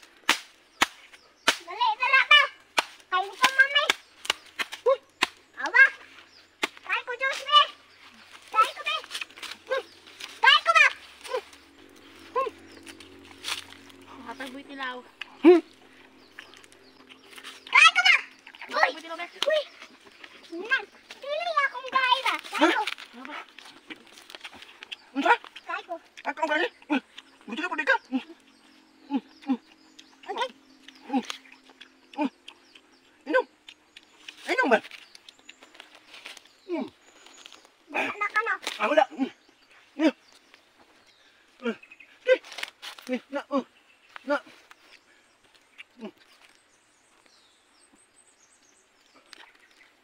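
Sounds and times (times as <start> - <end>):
people calling out: 8.5 - 23.5.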